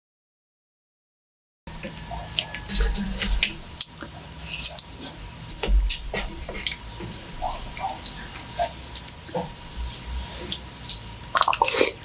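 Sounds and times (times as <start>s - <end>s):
chopsticks in wet pasta: 1.8s - 6.8s.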